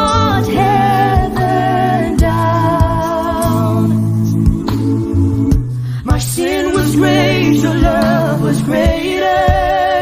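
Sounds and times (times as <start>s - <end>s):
low bass notes: 0.0s - 9.2s
beat: 0.0s - 10.0s.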